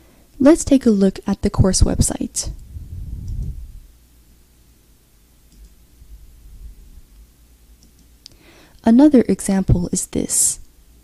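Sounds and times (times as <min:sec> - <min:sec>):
low steady hum: 0:00.0 - 0:11.0
computer mouse clicks: 0:07.8 - 0:08.1.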